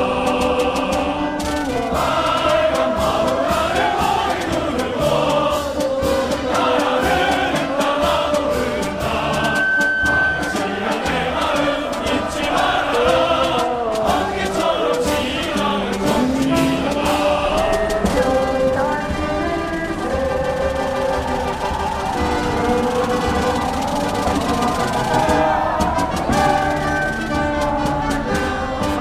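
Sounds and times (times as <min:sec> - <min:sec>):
choir singing: 0:00.0 - 0:29.0
instrumental backing: 0:00.0 - 0:29.0.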